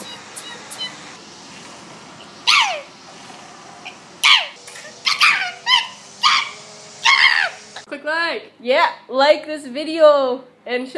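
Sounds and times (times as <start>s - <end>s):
woman squawking: 0.0s - 1.0s, 2.5s - 2.9s, 4.2s - 7.6s.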